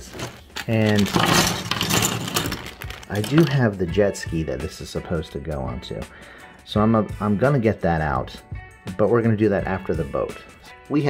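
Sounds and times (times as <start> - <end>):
plastic bag crinkling: 0.0 - 3.6
plastic pieces clicking and rattling: 0.0 - 3.6.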